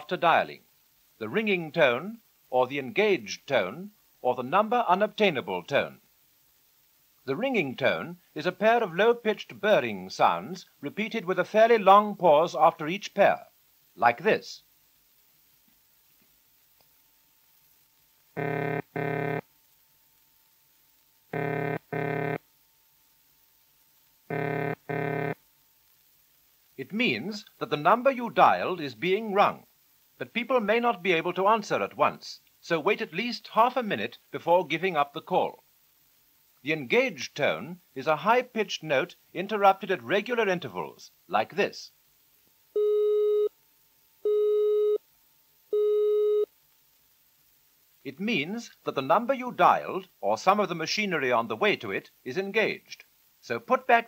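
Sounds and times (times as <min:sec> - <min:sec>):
telephone ringing tone: 0:18.4 - 0:19.4, 0:21.4 - 0:22.4, 0:24.3 - 0:25.4.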